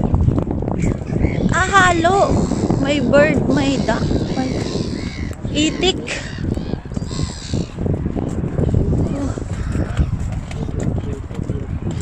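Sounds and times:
steady low rumble: 0.0 - 12.0
gulls calling: 0.8 - 7.8.

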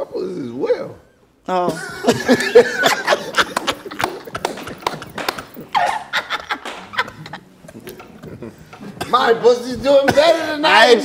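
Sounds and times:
group laughing: 1.6 - 10.3
hand claps and slaps: 2.4 - 8.8.

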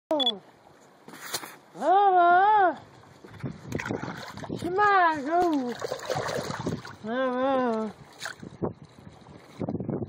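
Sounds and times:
brief scrape: 1.1 - 1.6.

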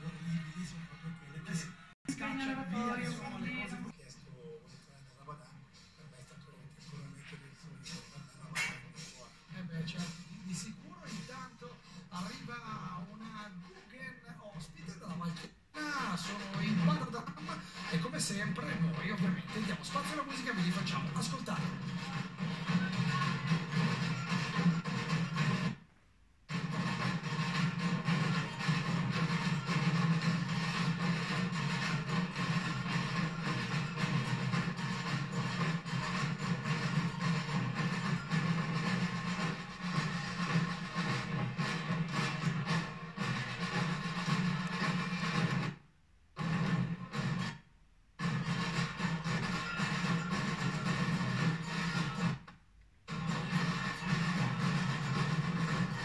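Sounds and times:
percussion band drumming: 19.4 - 25.8, 26.5 - 45.8, 48.2 - 52.4, 53.1 - 56.0.

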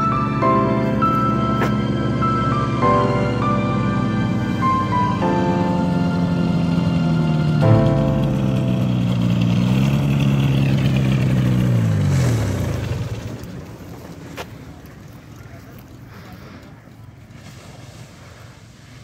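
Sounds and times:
engine and propeller running: 0.0 - 17.4.

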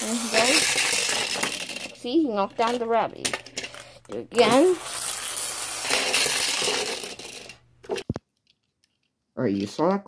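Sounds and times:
spinning top whirring and rattling: 0.0 - 8.0.

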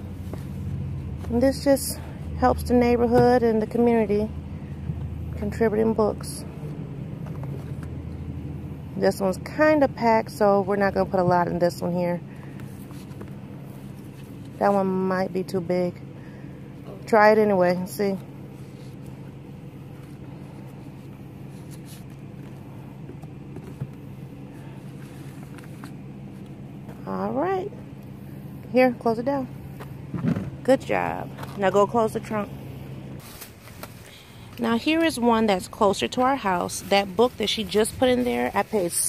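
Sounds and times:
car engine idling: 0.0 - 39.0.

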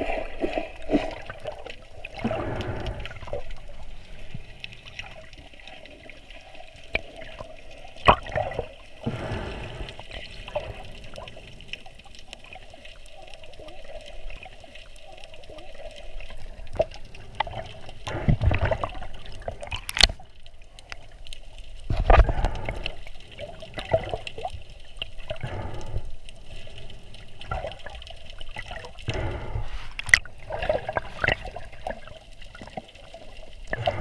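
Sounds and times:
bubbling and rushing water: 0.0 - 34.0
underwater water noise: 0.0 - 34.0.

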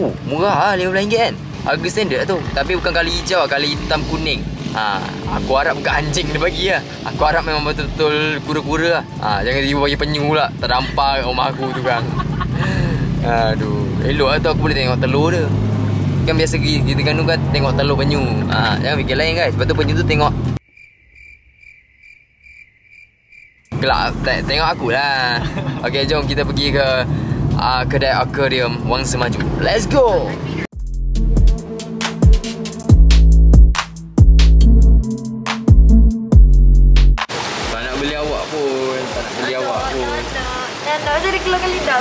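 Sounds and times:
electronic music: 30.8 - 37.3.

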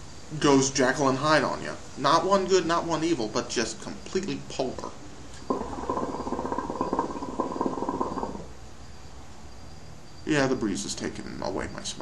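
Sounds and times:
hookah water bubbling: 5.4 - 8.6.

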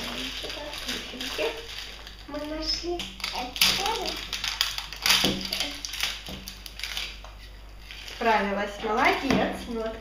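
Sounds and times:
plastic wrapping crinkling: 0.0 - 9.3.

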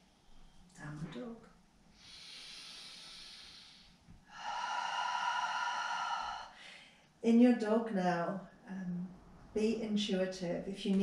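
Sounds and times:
woman breathing: 1.9 - 7.2.

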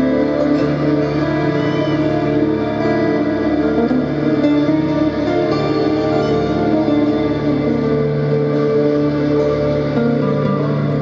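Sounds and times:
acoustic guitars playing: 0.0 - 11.0.

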